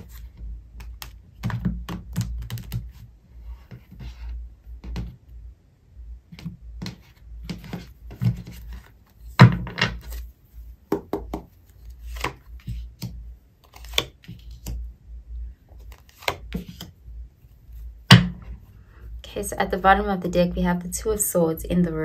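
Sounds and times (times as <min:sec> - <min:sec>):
cards tapping on table: 0:10.9 - 0:11.5.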